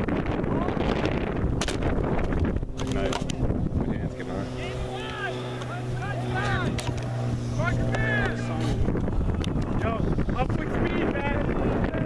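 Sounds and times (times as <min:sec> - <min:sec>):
low engine hum: 0:00.0 - 0:12.0
distant shouting voices: 0:04.2 - 0:12.0.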